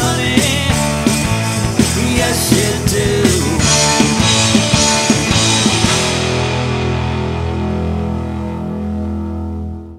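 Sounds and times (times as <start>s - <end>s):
electric guitars and bass chord: 0.0s - 9.9s.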